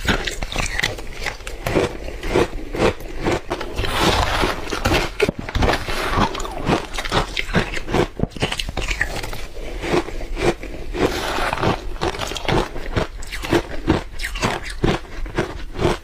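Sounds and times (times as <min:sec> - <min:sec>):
ice crunching being chewed: 0:00.0 - 0:16.0.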